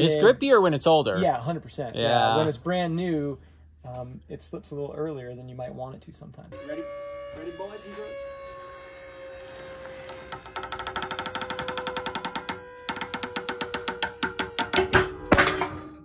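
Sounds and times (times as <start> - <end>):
winch whining: 6.5 - 16.0.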